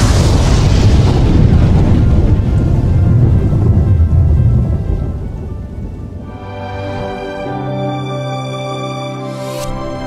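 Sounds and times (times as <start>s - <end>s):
thunder rumbling: 0.0s - 7.6s
title music: 6.2s - 10.0s.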